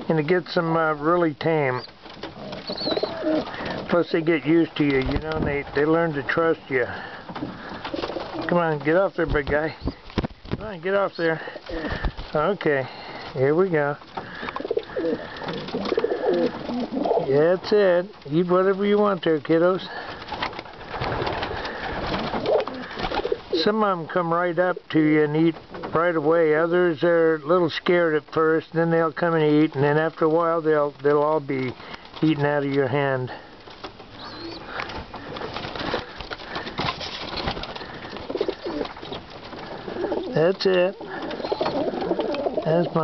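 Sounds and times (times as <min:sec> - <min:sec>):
pigeons pecking grain: 0:00.0 - 0:43.0
pigeon coos: 0:02.4 - 0:03.8, 0:14.3 - 0:17.3, 0:34.2 - 0:34.7, 0:39.7 - 0:40.4, 0:41.0 - 0:43.0.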